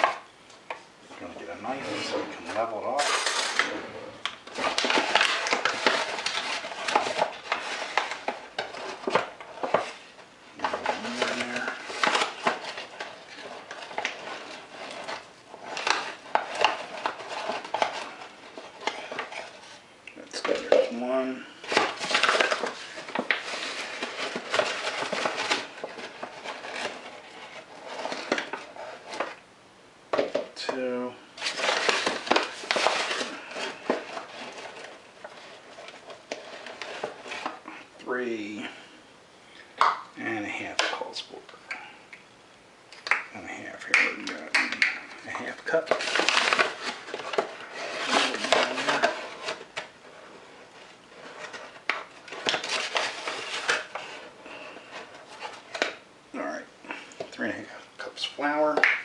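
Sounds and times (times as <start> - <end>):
paper bag rustling: 1.1 - 19.8, 20.4 - 29.4, 30.8 - 38.8, 44.1 - 56.0
utensils scraping and clinking: 1.2 - 8.2.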